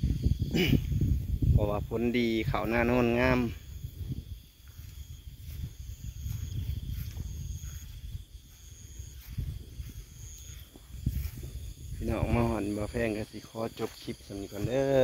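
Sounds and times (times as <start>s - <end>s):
insect chirps: 0.0s - 15.0s
insects droning: 0.0s - 15.0s
microphone handling rumble: 0.0s - 15.0s.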